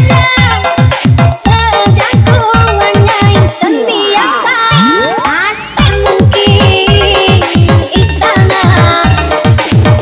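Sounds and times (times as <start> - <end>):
electronic dance music: 0.0 - 10.0
sliding synth tones: 3.6 - 5.9
rising synth sweep: 3.8 - 5.8.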